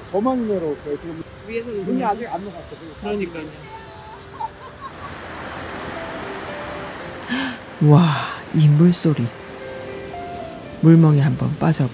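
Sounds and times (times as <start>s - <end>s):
river rushing over rapids: 0.0s - 11.9s.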